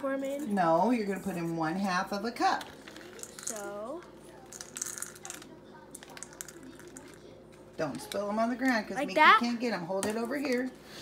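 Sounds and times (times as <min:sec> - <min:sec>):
nuts rattling into cup: 0:02.6 - 0:03.8, 0:04.4 - 0:07.2.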